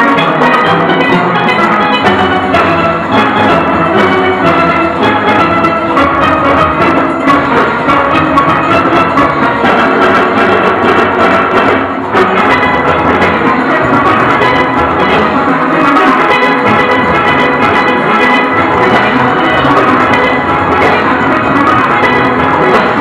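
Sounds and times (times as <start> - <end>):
drums and percussion: 0.0 - 23.0
steelpans playing: 0.0 - 23.0.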